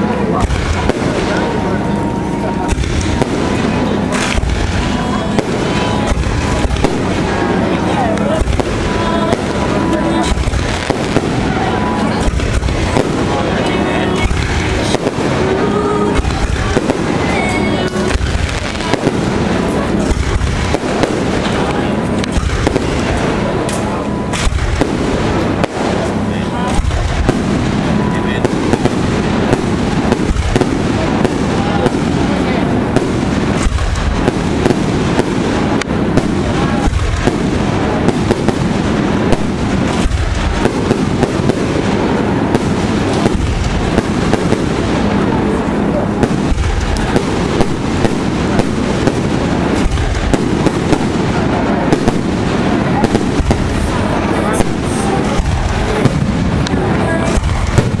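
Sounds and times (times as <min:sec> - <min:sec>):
fireworks bangs and crackling: 0:00.0 - 0:58.0.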